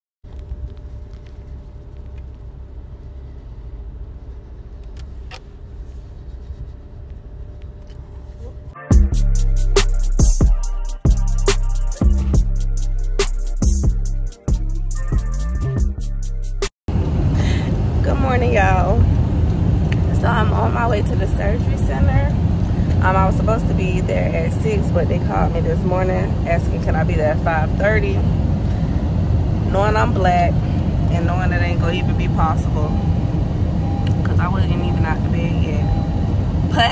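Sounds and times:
car cabin and road noise: 0:00.2 - 0:15.7, 0:16.4 - 0:36.9
car cabin rumble: 0:00.3 - 0:08.8
faint steady hum: 0:00.3 - 0:08.8
woman talking: 0:18.0 - 0:19.1, 0:20.0 - 0:22.4, 0:23.0 - 0:28.3, 0:29.7 - 0:33.0, 0:34.1 - 0:35.9, 0:36.7 - 0:36.9.

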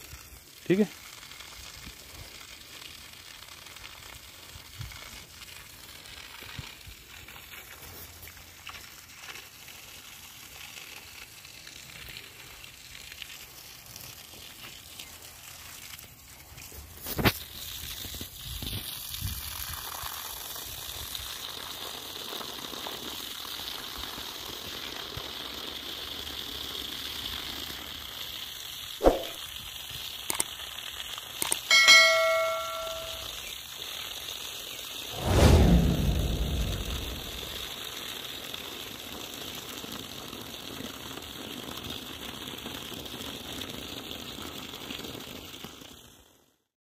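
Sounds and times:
water pouring onto grass: 0:00.0 - 0:31.8, 0:37.2 - 0:46.4
low falling-pitch sound: 0:35.2 - 0:37.6
short pitched sound: 0:35.2 - 0:37.6.

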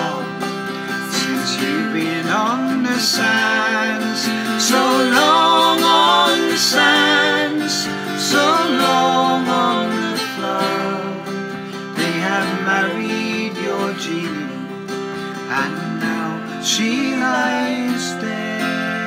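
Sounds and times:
voices holding long notes: 0:00.0 - 0:14.7
strummed acoustic guitar: 0:00.0 - 0:19.0.

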